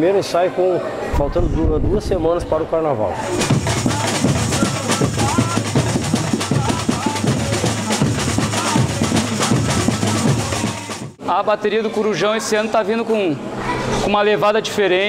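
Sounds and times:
deep bass drum tone: 3.3s - 11.2s
samba drums playing: 3.3s - 11.2s.

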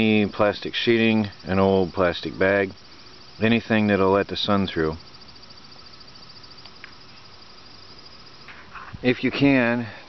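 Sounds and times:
crickets trilling: 0.0s - 10.0s
faint outdoor background: 0.0s - 10.0s.

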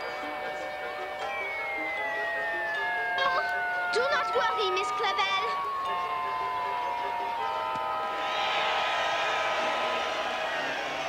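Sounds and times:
background music with held notes: 0.0s - 8.4s
downward sliding whistle: 0.6s - 2.8s, 7.2s - 11.0s.

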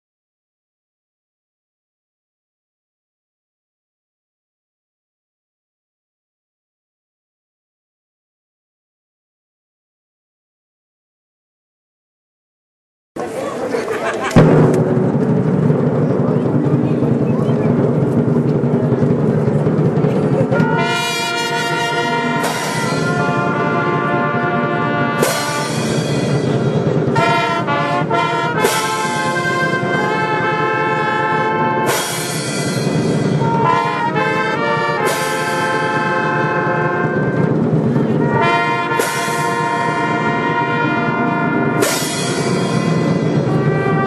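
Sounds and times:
crowd chatter: 13.2s - 44.0s
big drum stroke: 14.3s - 44.0s
brass band playing a march: 19.0s - 44.0s.

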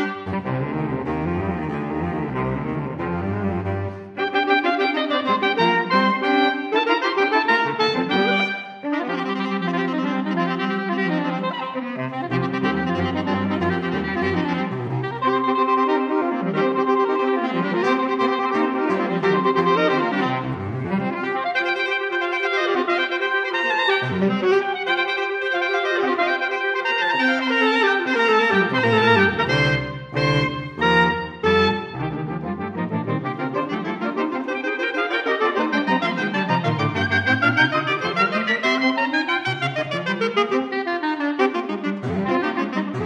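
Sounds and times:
saxophone quartet playing: 0.0s - 43.0s.

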